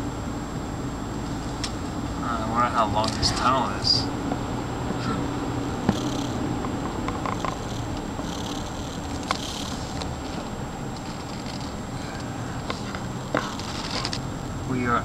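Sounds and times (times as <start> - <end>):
car driving through tunnel: 0.0 - 15.0.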